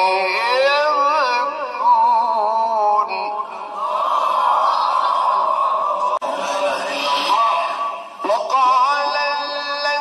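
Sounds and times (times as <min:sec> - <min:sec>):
man reciting in melodic chant: 0:00.0 - 0:03.7, 0:06.3 - 0:10.0.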